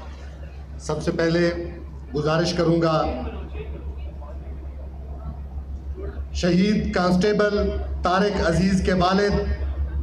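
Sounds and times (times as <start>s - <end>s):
steady low hum: 0.0s - 10.0s
faint background voices: 1.6s - 6.4s.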